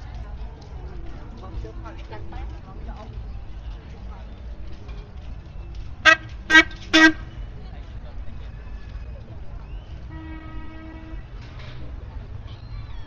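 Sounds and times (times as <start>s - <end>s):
street crowd hubbub: 0.0s - 13.0s
horn tooting: 6.0s - 7.4s, 10.1s - 11.5s.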